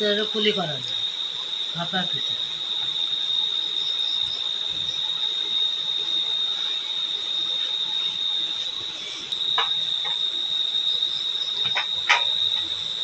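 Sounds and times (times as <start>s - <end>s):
high-pitched whine: 0.0s - 13.0s.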